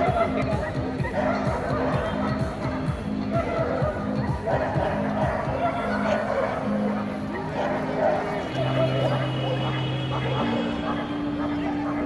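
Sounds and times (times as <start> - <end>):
background chatter: 0.0 - 12.0
music: 0.0 - 12.0.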